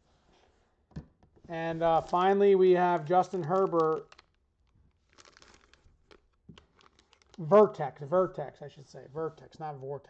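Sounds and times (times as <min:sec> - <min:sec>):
plastic crinkling: 0:01.8 - 0:07.6.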